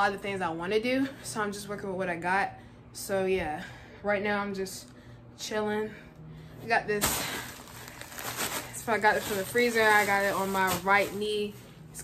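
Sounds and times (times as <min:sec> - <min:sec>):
rustling handling noise: 0:07.0 - 0:11.6.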